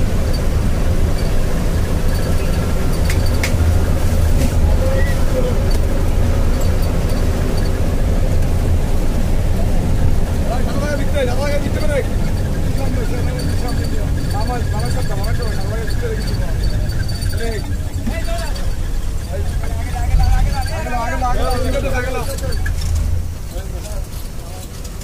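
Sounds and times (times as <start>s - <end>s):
vehicle engine and road noise: 0.0s - 25.0s
voices talking: 0.0s - 25.0s
sharp clicks: 2.1s - 4.6s.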